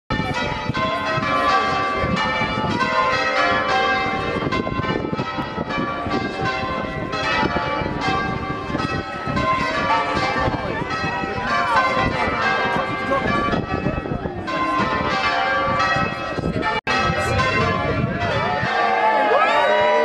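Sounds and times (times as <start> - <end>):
church bells ringing: 0.1 - 19.9.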